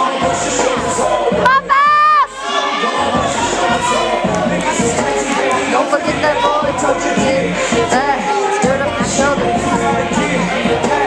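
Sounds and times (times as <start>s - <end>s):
crowd shouting and cheering: 0.0s - 11.0s
loud background music: 0.0s - 11.0s.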